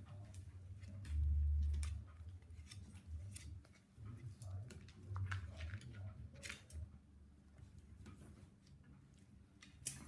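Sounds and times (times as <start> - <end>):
puppy claws clicking on tiles: 9.5 - 10.0.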